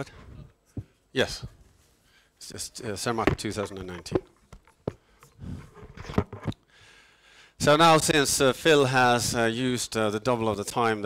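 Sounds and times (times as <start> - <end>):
handling clicks and knocks: 3.1 - 5.3.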